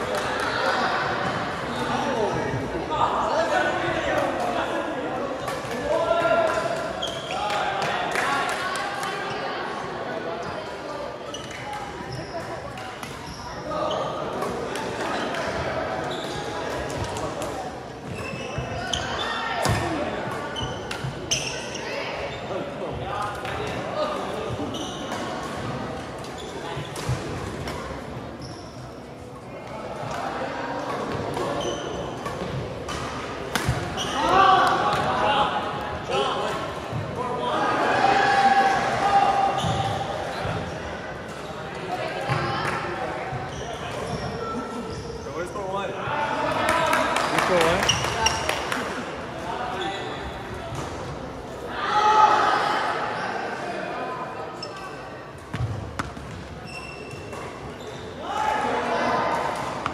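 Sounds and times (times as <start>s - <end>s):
indistinct chatter: 0.0s - 59.9s.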